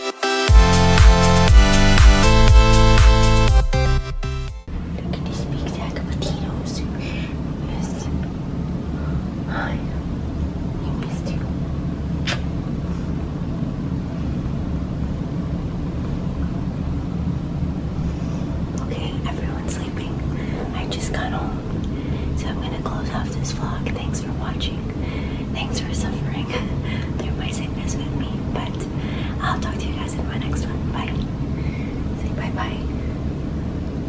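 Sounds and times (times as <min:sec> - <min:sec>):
steady low hum: 0:00.5 - 0:34.0
steady low rumble: 0:00.5 - 0:34.0
person whispering: 0:05.0 - 0:08.2, 0:09.5 - 0:10.0, 0:10.8 - 0:11.5, 0:18.8 - 0:21.6, 0:25.6 - 0:31.2, 0:32.2 - 0:32.9
woman whispering hoarsely: 0:05.0 - 0:08.2, 0:10.8 - 0:11.4.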